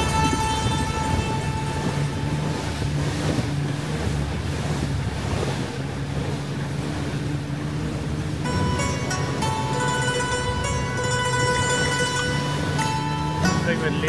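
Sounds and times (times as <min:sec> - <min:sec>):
tyre and wind noise: 0:00.0 - 0:06.6
car engine hum: 0:00.0 - 0:14.0
faint music: 0:08.5 - 0:14.0.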